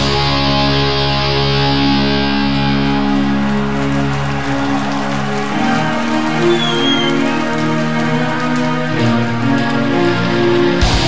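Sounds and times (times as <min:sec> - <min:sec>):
black metal band playing live: 0:00.0 - 0:05.9, 0:09.5 - 0:11.0
distorted electric guitar chords: 0:00.0 - 0:06.5, 0:07.1 - 0:11.0.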